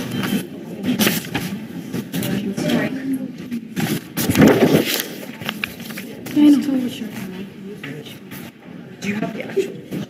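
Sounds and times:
people talking indistinctly: 0.3 - 10.0.

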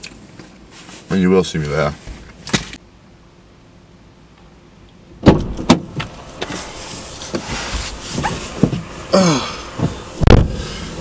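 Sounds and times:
rustling and shuffling: 0.0 - 2.8, 5.9 - 11.0
door shutting thud: 5.2 - 6.0
van door opening clack: 5.2 - 6.6.

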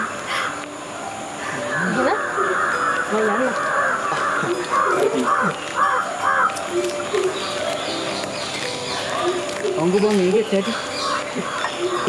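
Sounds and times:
crows cawing: 0.0 - 0.7, 1.4 - 12.0.

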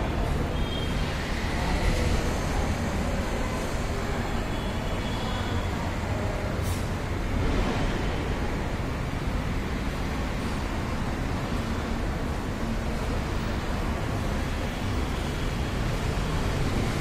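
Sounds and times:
low rumbling background noise: 0.0 - 17.0.

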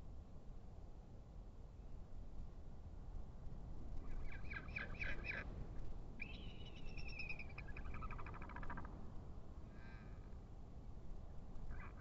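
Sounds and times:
bird calls: 4.0 - 5.4, 6.2 - 8.9.

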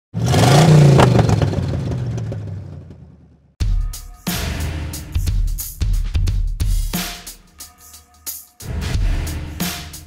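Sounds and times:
car engine revving: 0.2 - 3.4
low drum beat: 3.6 - 7.9, 8.6 - 10.0.

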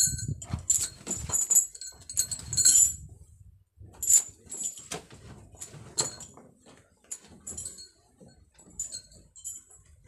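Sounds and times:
metal chains jangling: 0.0 - 3.1, 4.0 - 6.4, 7.1 - 10.0.

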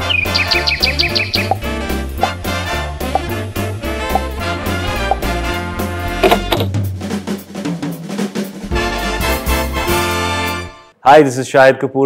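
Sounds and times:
cartoon bird tweet effect: 0.0 - 1.6
upbeat background music: 0.0 - 10.9.

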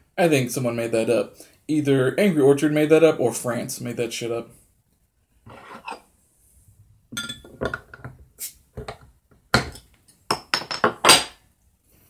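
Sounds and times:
glass bottle clinks and knocks: 7.1 - 8.1, 8.8 - 11.4.

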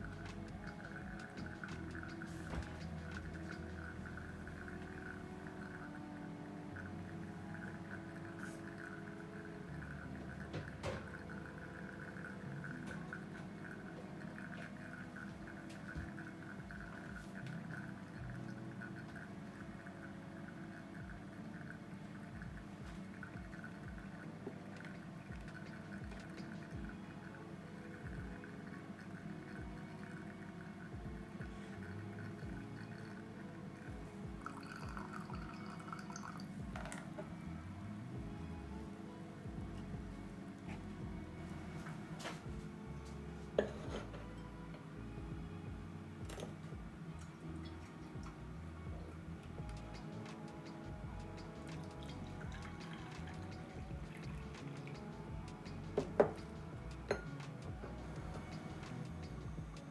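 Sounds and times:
coffee dripping into carafe: 0.0 - 37.3, 41.5 - 44.6, 46.3 - 48.5, 49.1 - 59.9
soft background music: 0.0 - 59.9.

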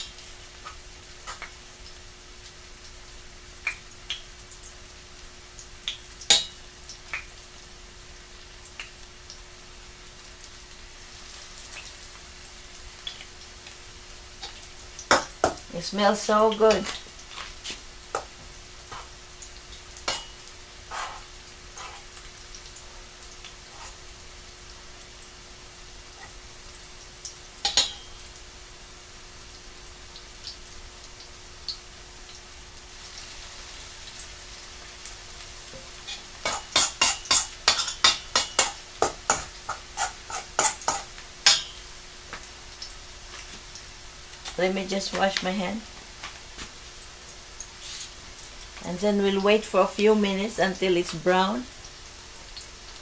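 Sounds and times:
faint steady hum: 0.0 - 53.0
food sizzling in oil: 0.0 - 53.0.

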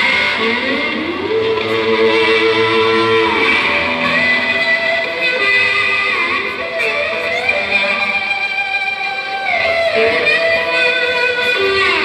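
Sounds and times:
rock band playing live: 0.0 - 12.0
sustained electric guitar line: 0.0 - 12.0.

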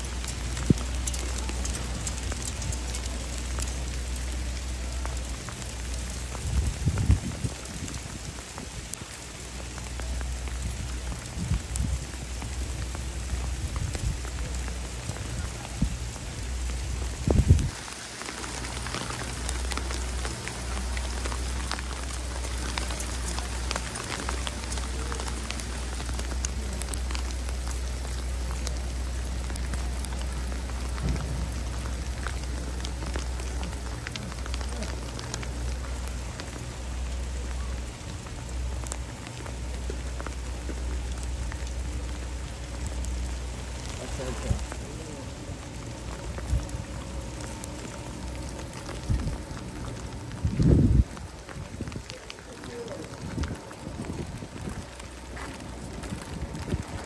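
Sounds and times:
hail ticking: 0.0 - 57.0
wind buffeting microphone: 0.0 - 57.0.

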